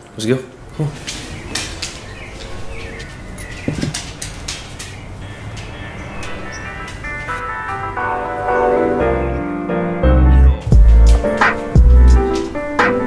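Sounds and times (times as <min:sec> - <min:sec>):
dog claws clicking on floor: 0:01.0 - 0:07.0
background music: 0:05.2 - 0:13.0.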